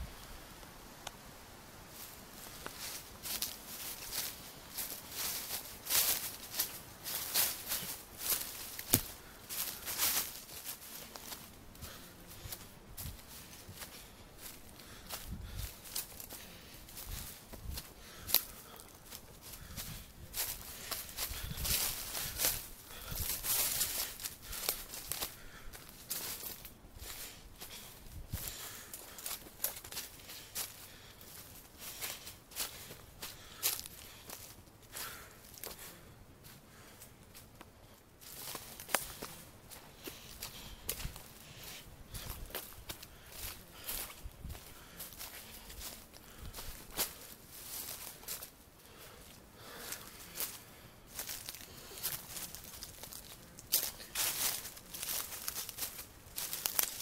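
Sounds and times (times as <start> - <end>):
footsteps on woodland trail: 0.0 - 57.0.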